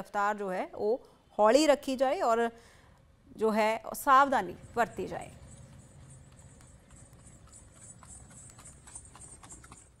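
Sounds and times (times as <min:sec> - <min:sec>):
horse hooves on paved road: 0:04.8 - 0:10.0.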